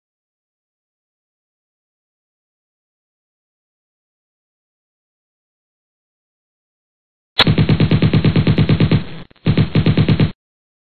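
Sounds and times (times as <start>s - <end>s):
machine-gun bursts: 7.4s - 10.4s.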